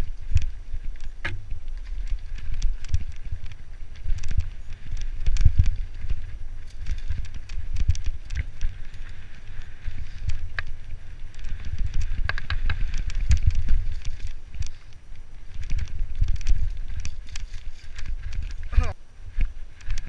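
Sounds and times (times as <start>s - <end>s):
bike clicks and rattles: 0.0s - 20.0s
wind rumble on microphone: 0.0s - 20.0s.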